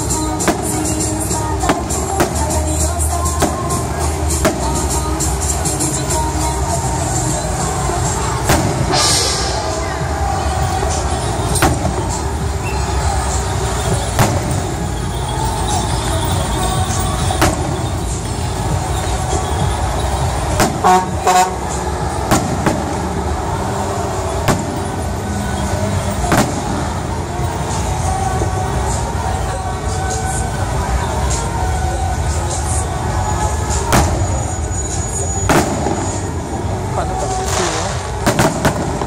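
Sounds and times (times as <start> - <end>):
firework bangs: 0.0 - 6.2, 6.9 - 29.2, 33.3 - 39.0.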